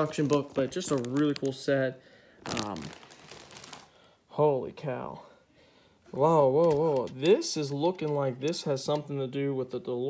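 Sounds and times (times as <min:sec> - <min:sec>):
plastic bags crinkling: 0:00.0 - 0:04.1.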